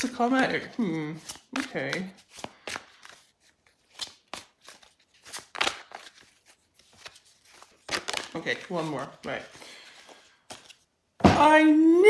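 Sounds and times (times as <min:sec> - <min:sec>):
cards being shuffled: 0:00.0 - 0:10.9.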